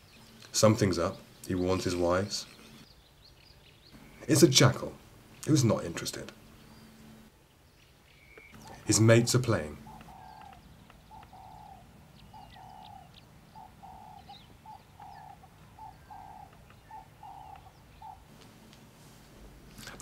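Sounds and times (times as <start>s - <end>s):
faint bird chirps: 0.0s - 4.8s, 6.4s - 18.3s
dove cooing: 8.5s - 18.4s.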